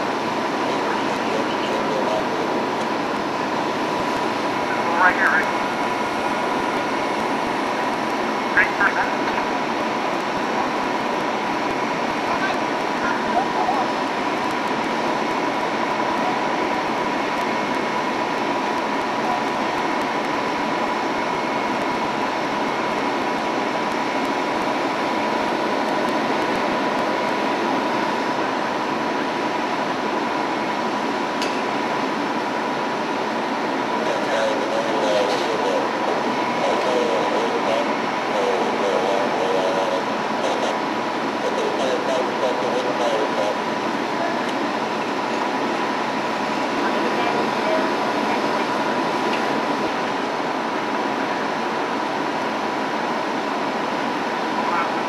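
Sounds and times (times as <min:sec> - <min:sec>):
fire engine roar: 0:00.0 - 0:55.0
thin steady whine: 0:00.0 - 0:55.0.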